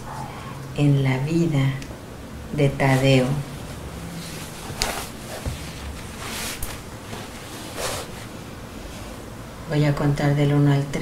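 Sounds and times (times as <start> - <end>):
soft hissing: 2.8 - 9.3.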